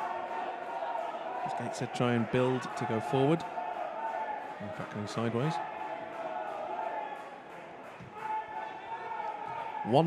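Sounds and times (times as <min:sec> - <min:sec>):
faint shouts of players: 0:00.0 - 0:10.0
man commentating: 0:01.5 - 0:03.4, 0:04.6 - 0:05.6.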